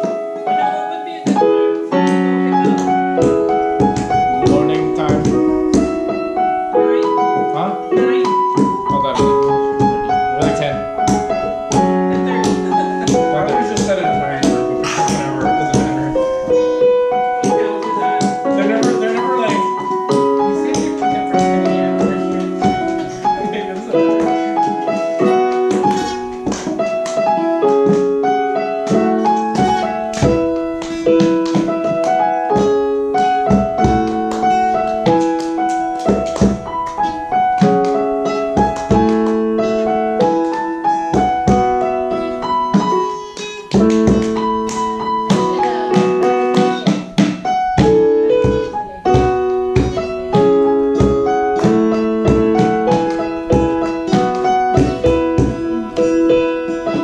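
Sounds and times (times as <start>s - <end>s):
digital piano chords and melody: 0.0s - 57.0s
acoustic guitar strumming: 0.8s - 57.0s.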